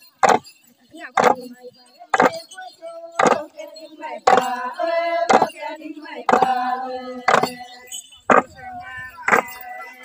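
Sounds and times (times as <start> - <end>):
bamboo staffs struck on ground: 0.2 - 0.4
faint group chanting: 2.1 - 10.0.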